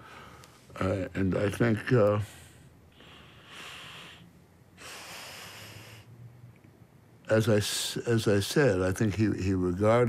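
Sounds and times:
man breathing heavily through nose: 0:00.0 - 0:00.7, 0:02.2 - 0:06.2.

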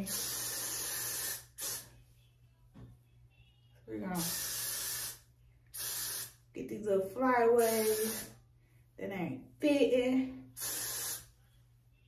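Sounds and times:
hairspray aerosol hissing: 0:00.0 - 0:01.9, 0:04.2 - 0:06.4, 0:07.6 - 0:08.4, 0:10.6 - 0:11.4.

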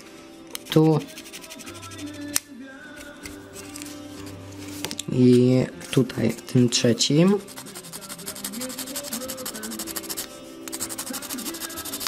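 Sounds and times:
faint music: 0:00.0 - 0:12.0
sandpaper scraping plastic: 0:07.4 - 0:12.0.

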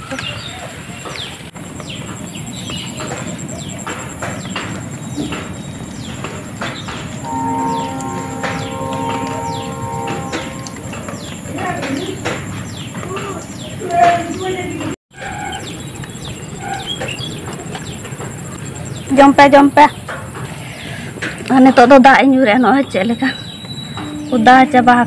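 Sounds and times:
young chickens peeping: 0:00.1 - 0:19.2
steady humming tone: 0:07.2 - 0:13.7.

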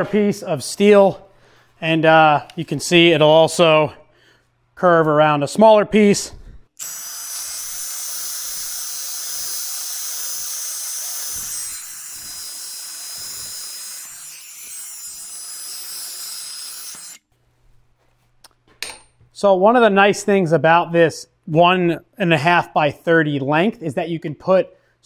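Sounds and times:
sanding belt hissing on metal: 0:06.8 - 0:17.2.

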